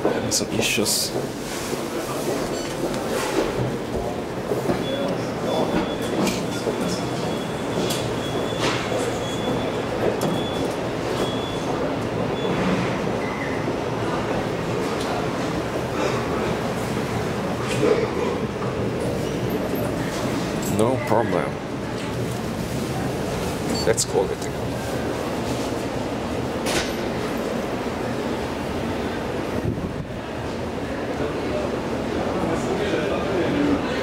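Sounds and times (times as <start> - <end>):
elevator car rumbling: 0.0 - 34.0.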